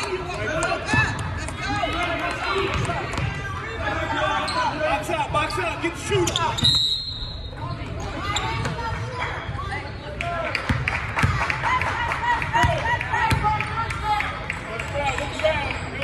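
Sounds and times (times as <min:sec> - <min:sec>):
voices echoing in gym: 0:00.0 - 0:16.0.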